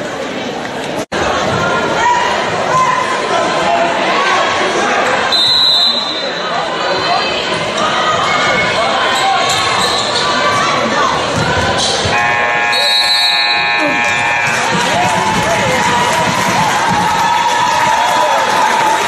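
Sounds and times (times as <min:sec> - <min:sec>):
crowd chatter: 0:00.0 - 0:19.0
referee's whistle: 0:05.3 - 0:06.4, 0:12.1 - 0:14.7
scoreboard buzzer: 0:12.1 - 0:15.5.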